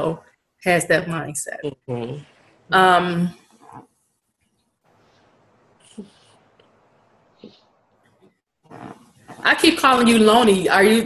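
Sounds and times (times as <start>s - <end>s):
soft vocal sound: 1.6s - 2.3s.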